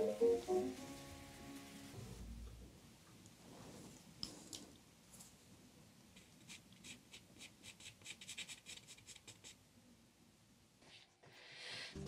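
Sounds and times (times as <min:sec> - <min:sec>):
pastel stick scratching on paper: 0:06.2 - 0:09.6.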